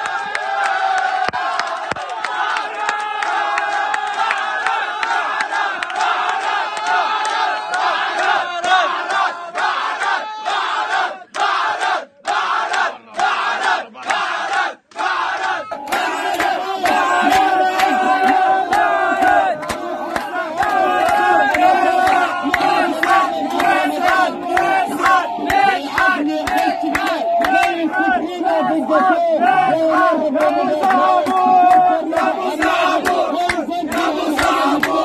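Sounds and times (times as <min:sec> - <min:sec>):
crowd cheering and shouting: 0:00.0 - 0:35.0.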